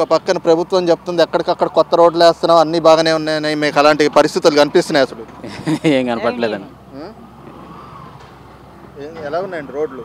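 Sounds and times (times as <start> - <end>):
man talking: 0.0 - 7.2, 9.0 - 10.0
faint background noise: 0.0 - 10.0
faint engine whine: 0.0 - 10.0
motor engine rumbling: 0.0 - 10.0.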